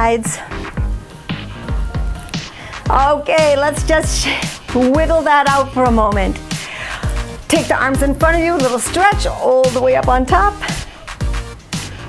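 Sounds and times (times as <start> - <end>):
workout music with steady beat: 0.0 - 12.0.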